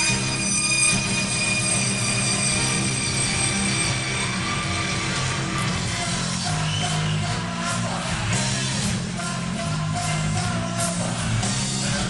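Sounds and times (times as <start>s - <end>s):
high held note: 0.0s - 5.7s
live rock band playing: 0.0s - 12.0s.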